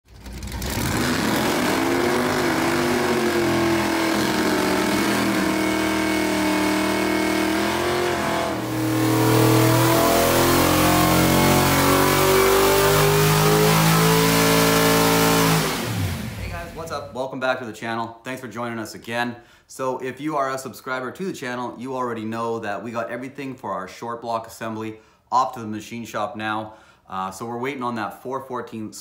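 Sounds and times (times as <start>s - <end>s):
car engine revving hard: 0.2s - 16.9s.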